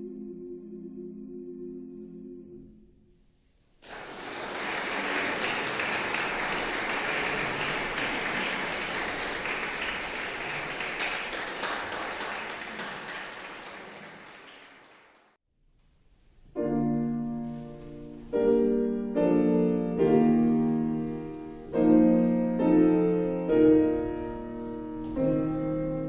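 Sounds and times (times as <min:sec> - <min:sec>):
audience applauding: 0:03.8 - 0:15.4.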